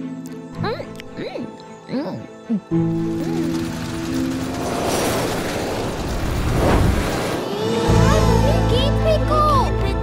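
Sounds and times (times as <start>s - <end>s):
mechanical whirring and clattering: 3.0s - 7.4s.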